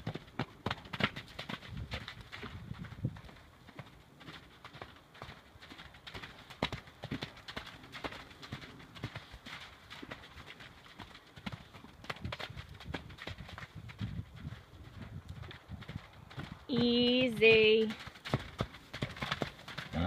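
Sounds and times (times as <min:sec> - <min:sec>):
pony hoofbeats on arena footing: 0:00.0 - 0:20.0.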